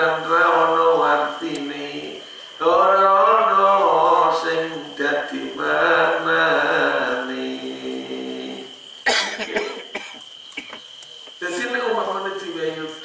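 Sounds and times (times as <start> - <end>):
man chanting into microphone: 0.0 - 8.7
man coughing: 9.0 - 10.8.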